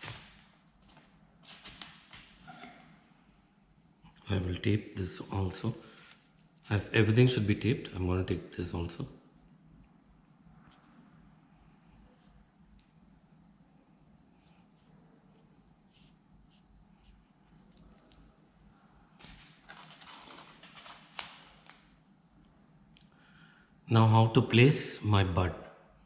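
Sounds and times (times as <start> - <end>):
tape rustling and clicking: 0.0 - 2.4, 19.2 - 22.0.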